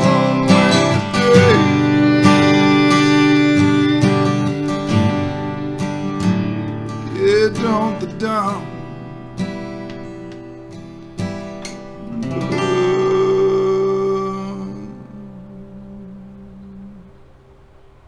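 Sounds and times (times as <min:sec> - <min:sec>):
man singing: 0:00.0 - 0:09.0, 0:12.0 - 0:17.2
strummed acoustic guitar: 0:00.0 - 0:18.0.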